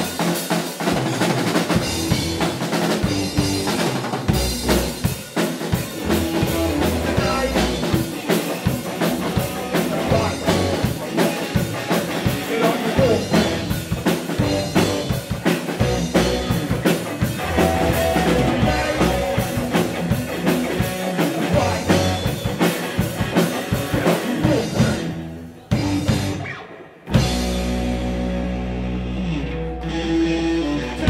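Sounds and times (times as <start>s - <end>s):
live rock band playing: 0.0s - 31.0s
person singing: 6.0s - 13.7s, 15.8s - 20.2s, 20.9s - 22.7s, 23.7s - 26.4s, 29.8s - 31.0s.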